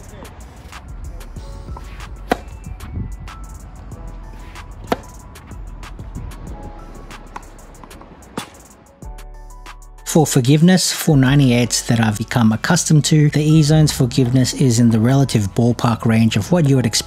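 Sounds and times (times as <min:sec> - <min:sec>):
background music: 0:00.0 - 0:17.0
tennis balls struck by racquets: 0:00.7 - 0:03.6, 0:04.3 - 0:06.1, 0:06.9 - 0:08.9.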